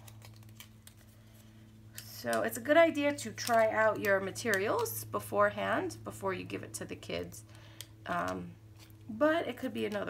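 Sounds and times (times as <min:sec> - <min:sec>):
rubber band and cardboard rustling: 0:00.0 - 0:05.0
low room hum: 0:00.0 - 0:10.0.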